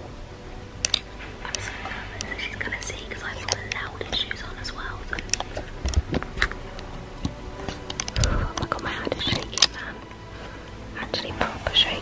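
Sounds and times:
person whispering: 1.4 - 5.6, 8.1 - 10.1, 10.9 - 12.0
sharp clicks: 5.1 - 10.2.

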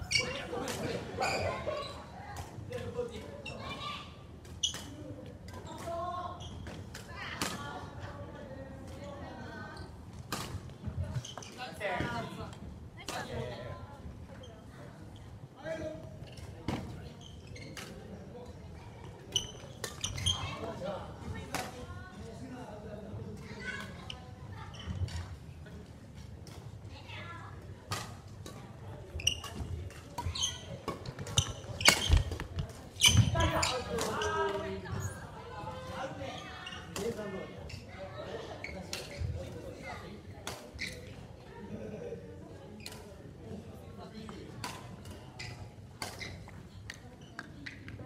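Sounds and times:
shoes squeaking on court: 0.0 - 2.1, 5.6 - 6.9, 9.8 - 12.2, 16.2 - 18.1, 19.2 - 20.7, 28.1 - 35.3, 36.4 - 39.6, 40.6 - 41.3, 44.7 - 48.0
players' voices: 0.0 - 4.3.

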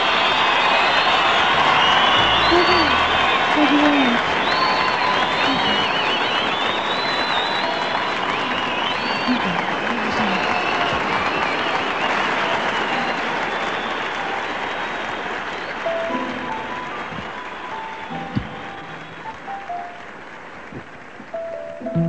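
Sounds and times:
high whistles: 0.0 - 20.0
audience applauding: 0.0 - 22.0.

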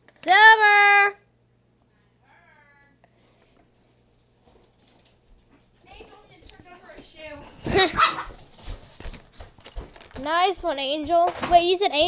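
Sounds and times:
dog barking: 7.8 - 8.4.

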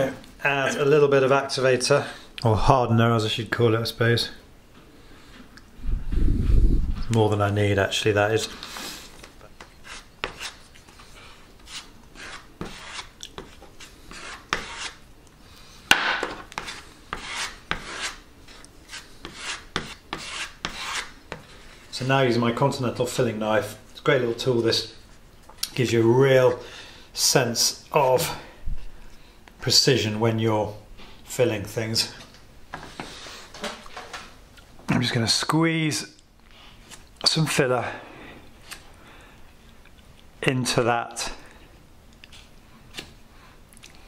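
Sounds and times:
knife scraping filler on board: 11.6 - 15.0, 16.2 - 21.5.

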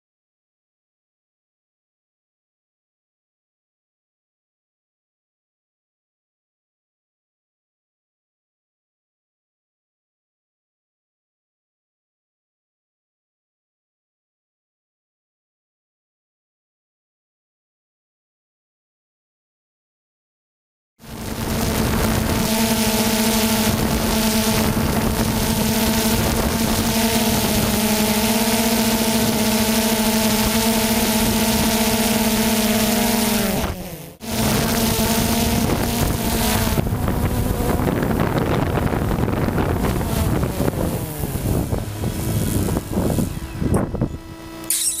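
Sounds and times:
car engine revving: 21.3 - 38.2.

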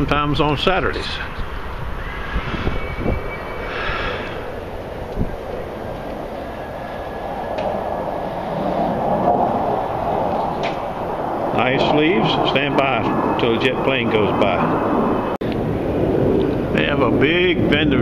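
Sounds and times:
jet airplane passing overhead: 0.0 - 18.0.

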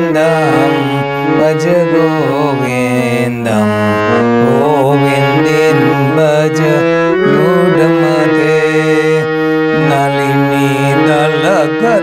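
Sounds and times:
harmonium: 0.0 - 12.0
man singing: 0.0 - 12.0.

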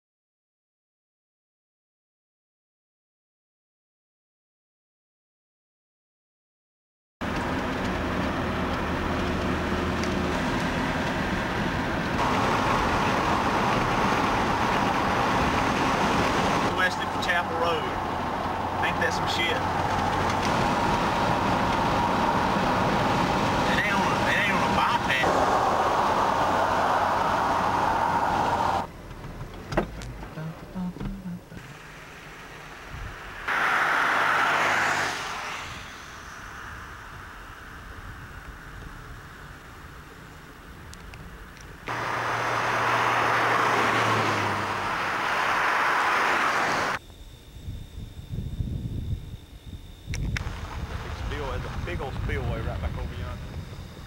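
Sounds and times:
car road and engine noise: 7.2 - 54.0
noise of unclear source: 23.6 - 28.9, 31.1 - 40.9.

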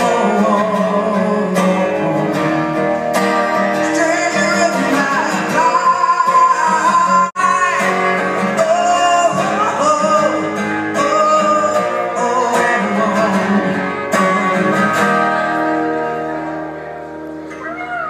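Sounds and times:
man singing: 0.0 - 15.4
acoustic guitar strumming: 0.0 - 18.0.

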